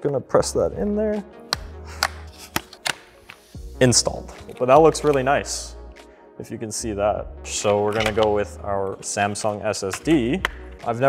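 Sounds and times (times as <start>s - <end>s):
memory slot latches snapping: 1.5s - 3.3s, 7.6s - 8.4s.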